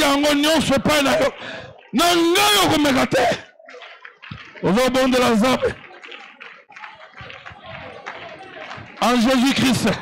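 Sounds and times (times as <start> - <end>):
faint hand claps: 3.7 - 10.0.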